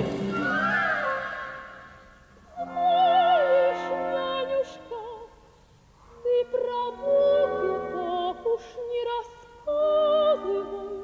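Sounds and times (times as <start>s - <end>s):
symphony orchestra: 0.0s - 5.1s
operatic soprano singing: 0.0s - 5.4s, 6.2s - 11.0s.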